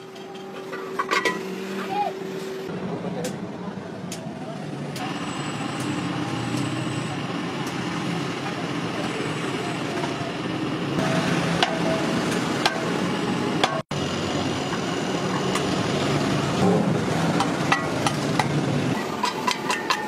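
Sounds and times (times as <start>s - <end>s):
street traffic noise: 0.0s - 20.0s.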